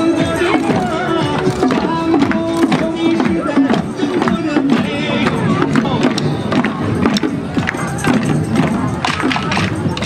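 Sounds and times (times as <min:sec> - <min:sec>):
murmur of crowd: 0:00.0 - 0:10.0
hand drums beating: 0:00.5 - 0:10.0.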